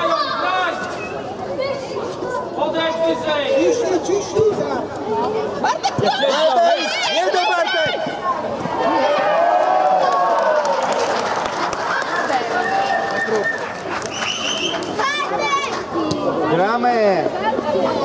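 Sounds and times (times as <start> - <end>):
children and spectators shouting: 6.1 - 13.5.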